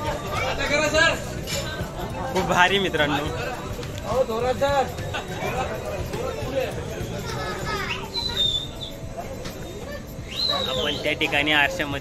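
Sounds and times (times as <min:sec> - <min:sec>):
people and children calling out: 0:06.9 - 0:11.7.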